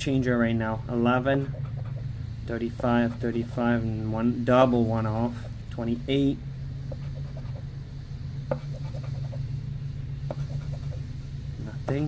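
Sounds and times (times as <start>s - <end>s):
coin scratching a ticket: 6.9s - 7.6s, 8.5s - 9.4s, 10.3s - 11.0s.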